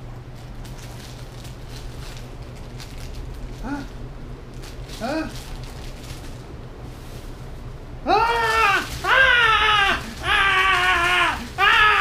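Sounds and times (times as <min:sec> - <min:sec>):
man screaming: 0:08.0 - 0:12.0.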